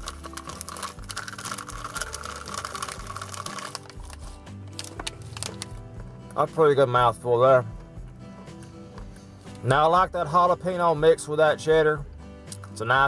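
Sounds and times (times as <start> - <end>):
peanuts being crunched: 0.0 - 5.8
plastic packet crinkling: 0.0 - 5.8
background music with steady beat: 0.0 - 13.0.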